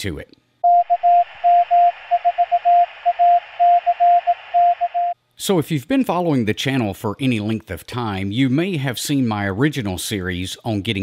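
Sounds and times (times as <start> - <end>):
morse code tone: 0.6 - 5.2
radio hiss: 1.3 - 4.8.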